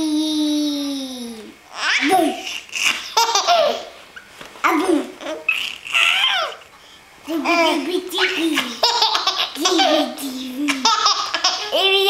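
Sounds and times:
baby laughing: 1.7s - 4.0s, 4.7s - 6.6s, 7.4s - 12.0s.

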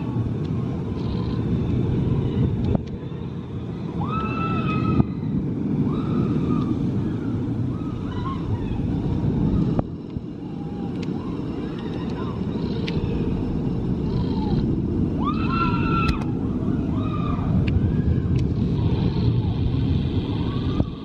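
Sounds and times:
roller coaster train rumble: 0.0s - 21.0s.

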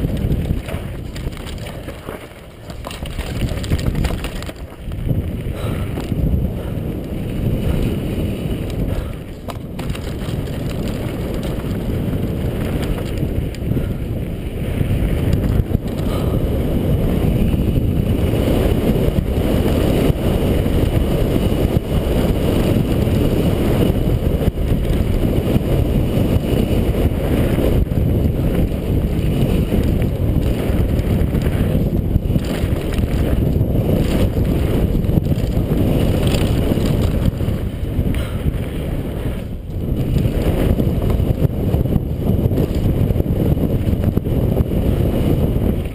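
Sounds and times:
bike rattling: 0.0s - 45.9s
tyres on rocky dirt: 0.0s - 45.9s
wind buffeting camera: 0.0s - 45.9s.

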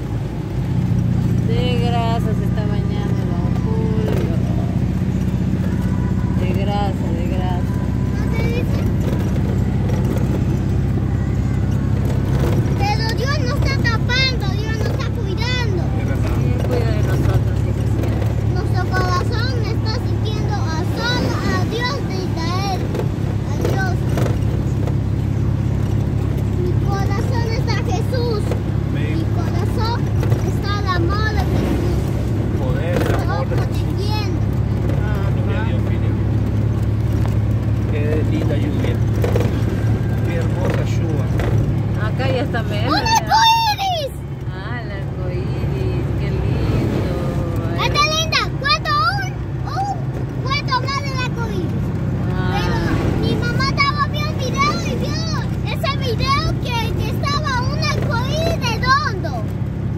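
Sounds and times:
vehicle engine droning: 0.0s - 59.9s.

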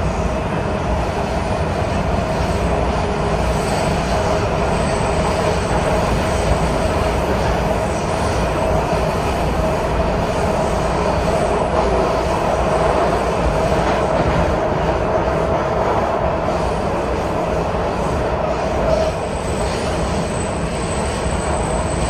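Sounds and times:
sustained train whine: 0.0s - 22.0s
train rumble and rush: 0.0s - 22.0s.

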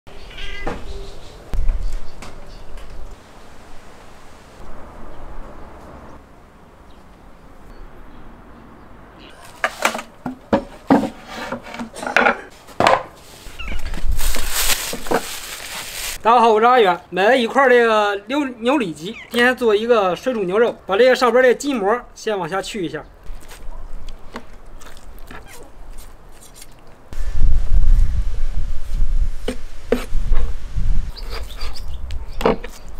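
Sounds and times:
board scraping on stone: 9.4s - 13.1s.

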